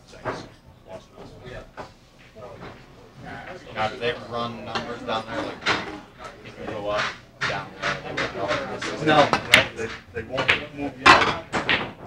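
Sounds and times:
people talking indistinctly: 0.0s - 11.8s.

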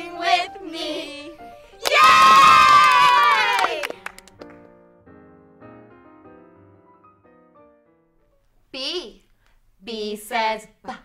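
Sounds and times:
long high shout: 1.8s - 3.9s
children cheering: 1.8s - 4.0s.

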